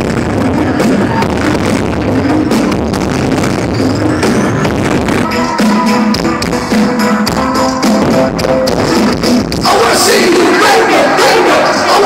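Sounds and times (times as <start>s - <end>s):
live band playing pop music: 0.0s - 12.0s
steady drum beat: 0.0s - 12.0s.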